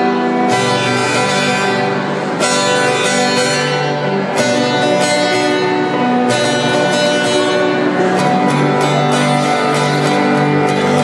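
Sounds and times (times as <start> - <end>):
acoustic guitars strumming chords: 0.0 - 11.0.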